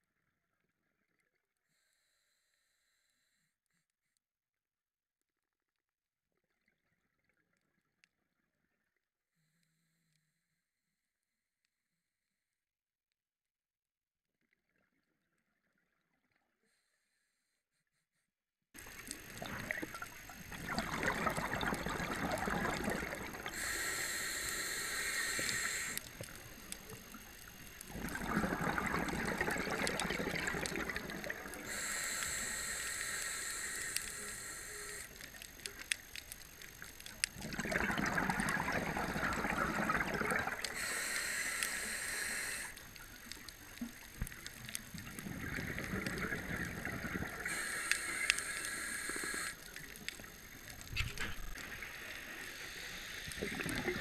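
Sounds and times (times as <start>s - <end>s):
bubbling exhaled air: 18.9s - 34.0s, 37.2s - 54.0s
hissing inhale through regulator: 18.9s - 36.0s, 36.8s - 43.8s, 44.7s - 54.0s.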